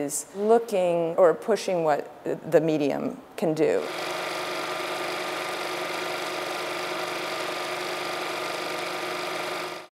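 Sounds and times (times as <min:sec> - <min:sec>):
film projector whirring: 0:03.8 - 0:09.9.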